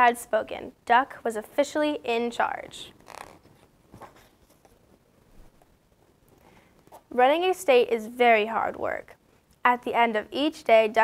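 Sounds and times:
paper page turning: 3.0 - 4.8.

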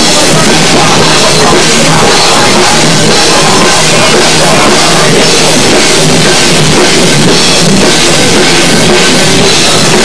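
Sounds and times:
drum kit with cymbals: 0.0 - 10.0
electric guitars: 0.0 - 10.0.

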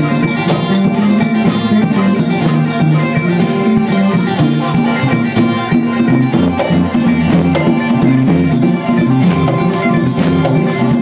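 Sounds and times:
plucked string lead melody: 0.0 - 11.0
steady beat: 0.0 - 11.0.

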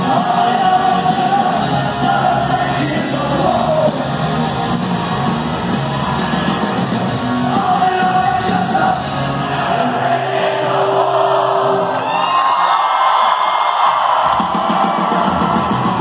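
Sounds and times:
live rock band playing: 0.0 - 9.4, 14.3 - 16.0
crowd yelling and cheering: 0.0 - 16.0.

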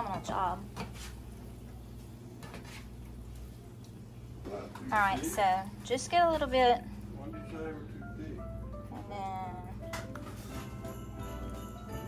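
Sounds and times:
woman speaking: 0.0 - 0.7, 4.9 - 6.9, 8.9 - 9.8.

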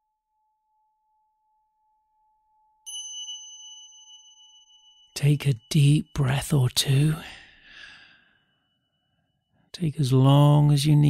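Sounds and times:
breathy sigh: 7.2 - 8.4.

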